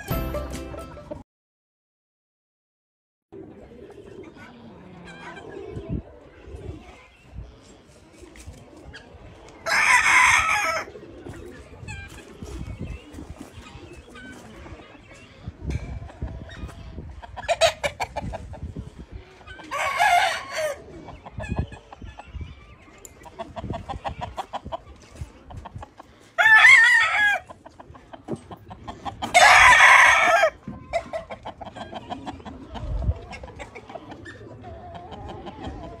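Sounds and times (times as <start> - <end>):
roosters crowing: 9.6 - 11.0, 19.6 - 21.0, 26.4 - 27.5, 29.2 - 31.3
soft clucks and clicks: 27.5 - 29.3, 30.7 - 36.0.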